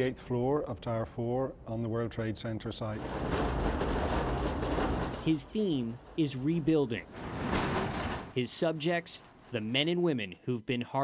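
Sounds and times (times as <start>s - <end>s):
distant traffic rumble: 2.8s - 10.2s.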